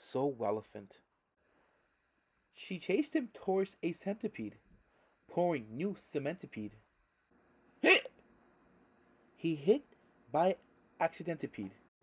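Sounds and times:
man imitating a hiccup: 0:07.8 - 0:08.2.

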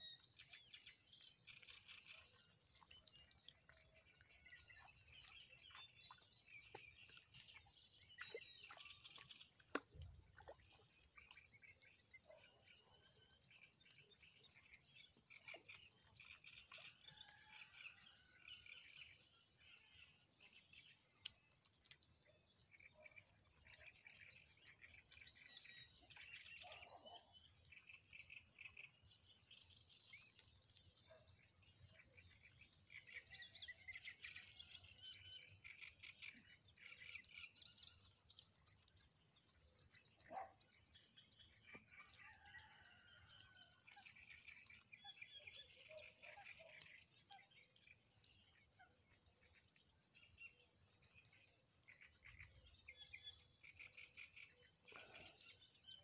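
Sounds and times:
faint high-pitched bird chirping: 0:22.9 - 0:27.4, 0:40.1 - 0:42.9.

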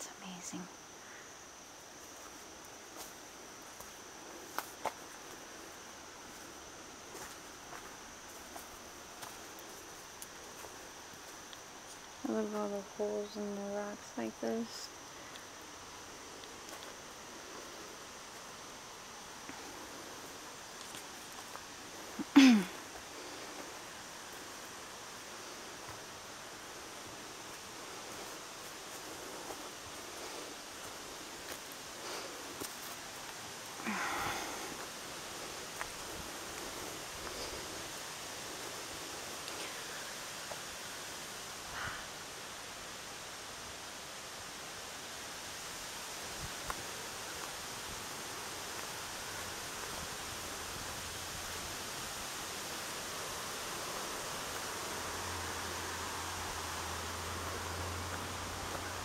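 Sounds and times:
high-pitched insect drone: 0:00.0 - 0:43.2
steady hiss: 0:00.0 - 0:59.0
footsteps on dirt trail: 0:02.0 - 0:12.1, 0:19.4 - 0:24.8, 0:25.4 - 0:40.8, 0:57.4 - 0:59.0.

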